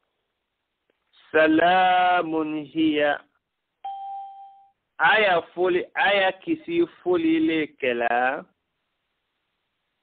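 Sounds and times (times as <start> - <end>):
man reciting: 1.2 - 3.4, 5.0 - 8.5
chime-like ding: 3.9 - 4.7.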